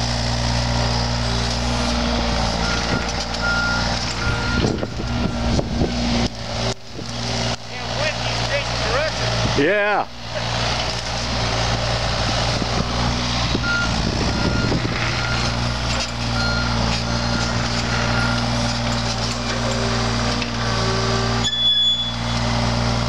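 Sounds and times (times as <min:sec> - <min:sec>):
diesel engine running: 0:00.0 - 0:23.0
warning alarm beeps: 0:02.6 - 0:05.6, 0:13.6 - 0:15.6, 0:16.4 - 0:18.5
rising hydraulic whine: 0:12.6 - 0:22.5.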